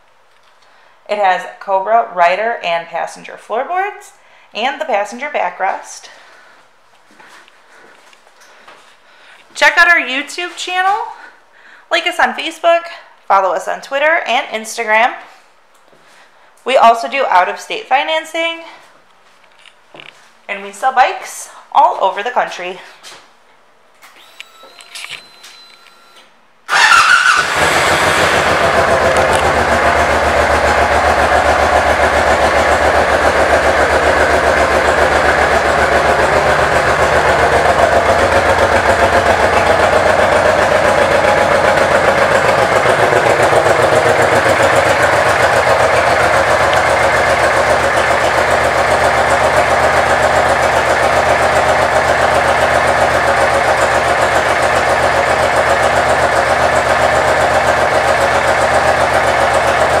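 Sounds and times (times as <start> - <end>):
motorcycle engine idling: 26.7 - 60.0.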